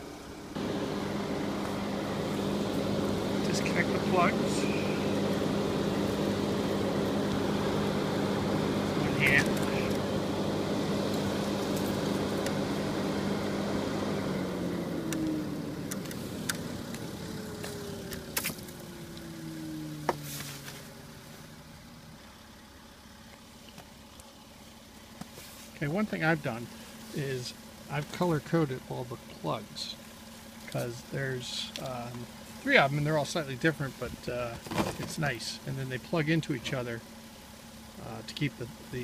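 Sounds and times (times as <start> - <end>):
vehicle engine hum: 0.0 - 39.0.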